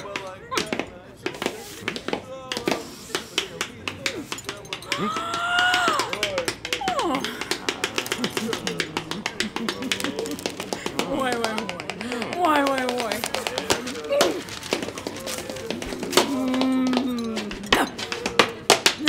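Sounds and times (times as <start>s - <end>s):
fast clicking percussion: 2.5s - 19.0s.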